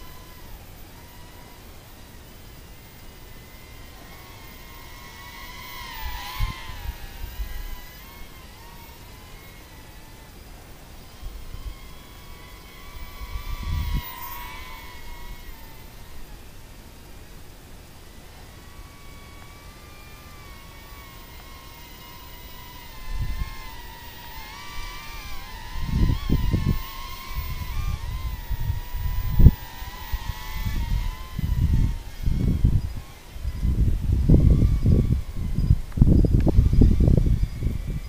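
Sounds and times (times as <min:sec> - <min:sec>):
toy quadcopter propellers whining: 0:00.0 - 0:38.0
wind gusts on microphone: 0:03.1 - 0:10.0, 0:11.1 - 0:16.4, 0:18.8 - 0:38.0.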